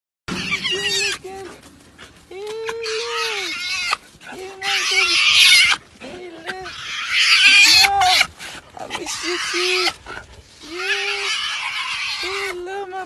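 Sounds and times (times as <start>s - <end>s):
hyena whining squeals: 0.3s - 1.2s, 6.7s - 8.3s, 10.6s - 12.6s.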